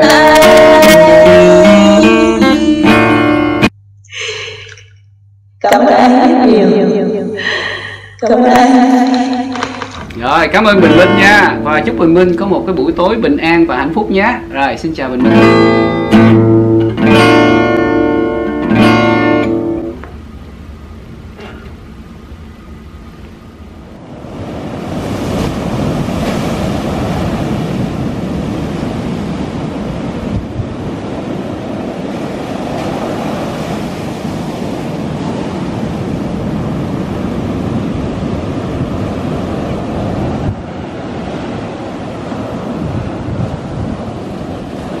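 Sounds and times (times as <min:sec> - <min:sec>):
waves breaking on a beach: 0:00.0 - 0:02.2, 0:05.8 - 0:45.0.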